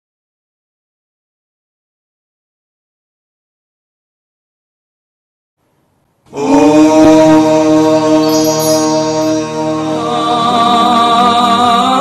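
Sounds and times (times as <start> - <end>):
devotional chanting with music: 6.3 - 12.0.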